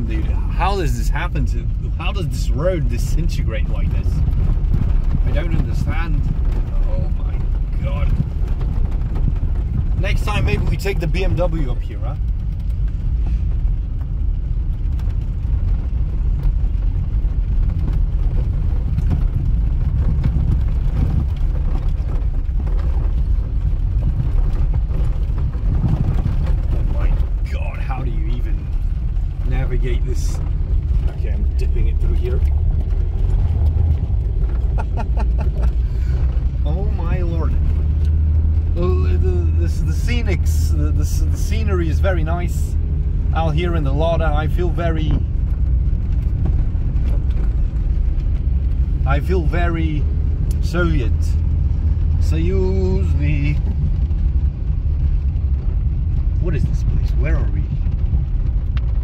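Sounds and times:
car engine low rumble: 0.0s - 59.0s
car knocks and rattles: 1.8s - 38.8s.

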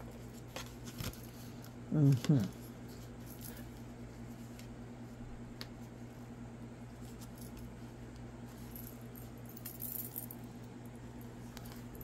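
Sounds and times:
low electrical hum: 0.0s - 12.0s
cards clicking and rustling: 0.1s - 2.6s.

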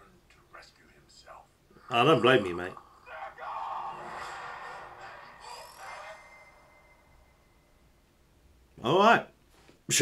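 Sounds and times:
voice: 0.0s - 6.5s
trailer music and sound effects: 3.6s - 8.2s.

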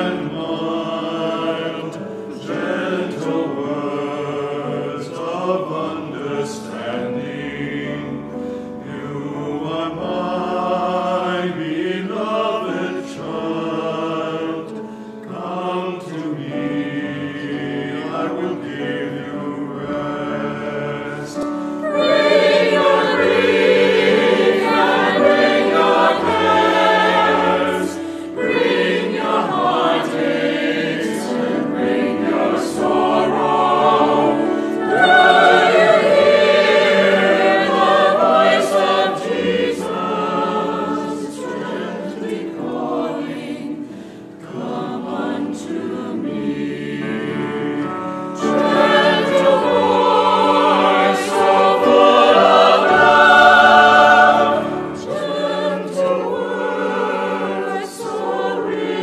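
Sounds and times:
church choir singing: 0.0s - 59.0s.

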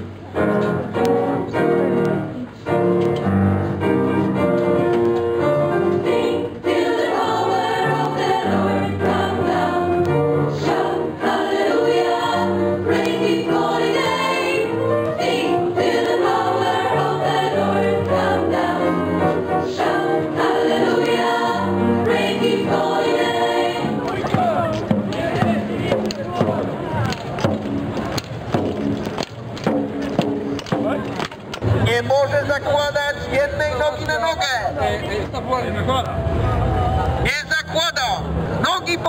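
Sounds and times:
youth choir singing in harmony: 5.4s - 26.7s.

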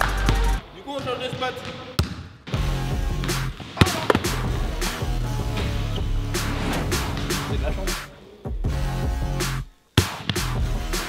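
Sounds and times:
background music with drum beat: 0.0s - 0.6s, 2.5s - 11.0s.

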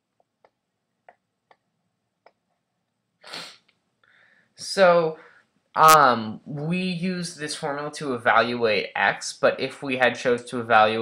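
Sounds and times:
breath drawn in: 3.3s - 4.5s.

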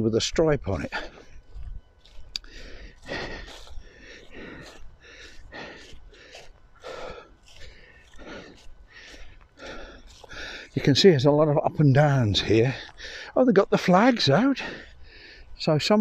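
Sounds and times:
footsteps on grass: 0.0s - 16.0s
person breathing: 0.9s - 10.8s, 12.4s - 13.4s, 14.5s - 15.6s.

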